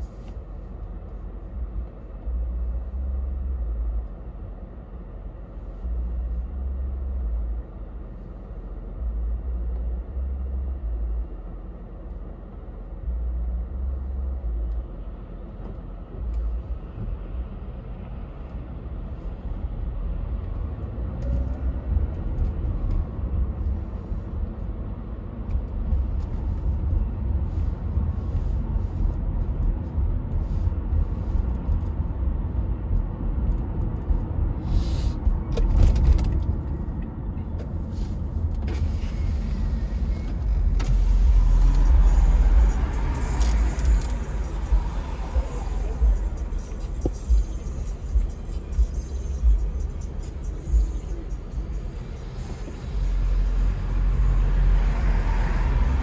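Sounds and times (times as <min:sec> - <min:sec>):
car engine and tyres rumbling: 0:00.0 - 0:56.0.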